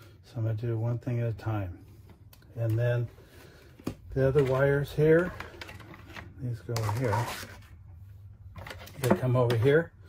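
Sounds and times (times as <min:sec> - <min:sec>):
person speaking: 0:04.0 - 0:05.6.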